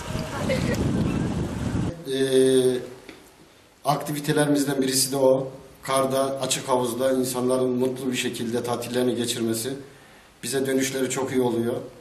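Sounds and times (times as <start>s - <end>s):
wind buffeting microphone: 0.0s - 1.9s
man speaking: 1.9s - 3.0s, 3.8s - 11.9s.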